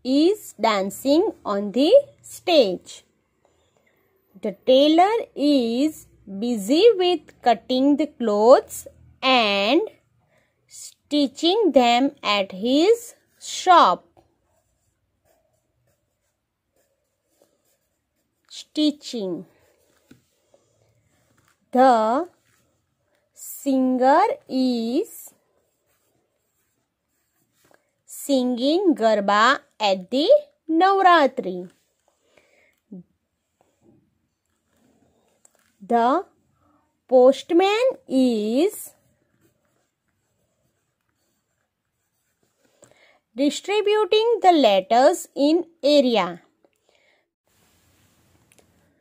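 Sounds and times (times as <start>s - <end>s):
pen scratching on paper: 11.3s - 32.2s, 37.4s - 42.8s.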